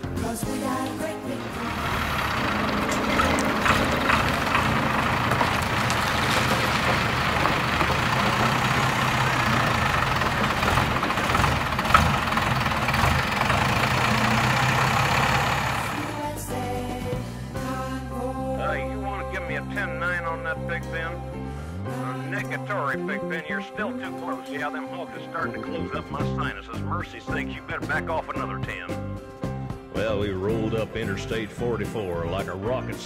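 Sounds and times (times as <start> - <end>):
diesel truck engine running: 0.0 - 17.8.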